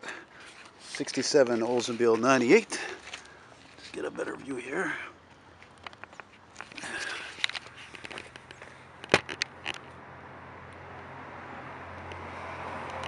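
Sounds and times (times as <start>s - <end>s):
passing motor vehicle hum: 7.6s - 13.0s.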